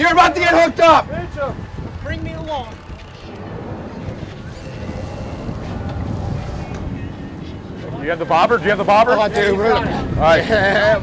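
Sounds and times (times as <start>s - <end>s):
boat engines rumbling: 0.0s - 11.0s
wind: 0.0s - 11.0s
water noise: 0.7s - 10.2s.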